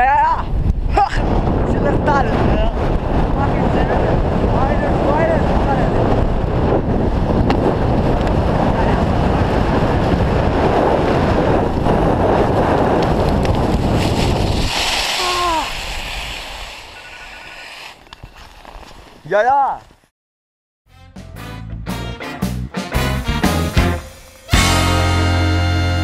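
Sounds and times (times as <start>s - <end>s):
wind buffeting microphone: 0.0s - 19.2s.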